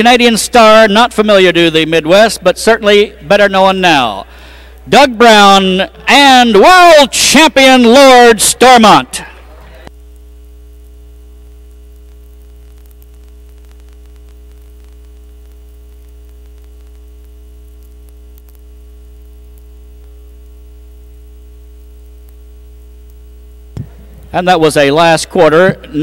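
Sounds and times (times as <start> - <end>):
electrical mains hum: 0.0 - 26.0.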